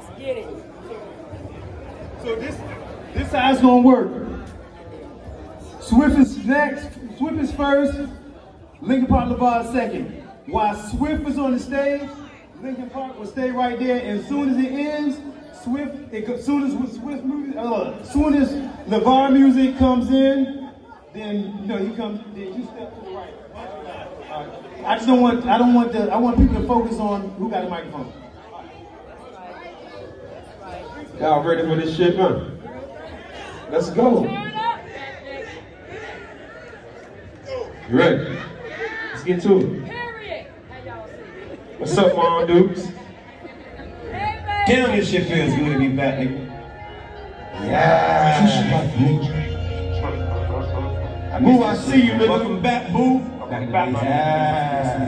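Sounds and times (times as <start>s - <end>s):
people talking in echoing hall: 0.0s - 55.0s.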